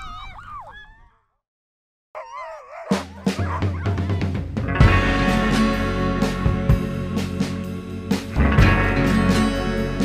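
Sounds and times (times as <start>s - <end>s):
sled dogs howling and yelping: 0.0s - 1.4s, 2.2s - 4.6s
music with drum beat: 2.9s - 10.0s.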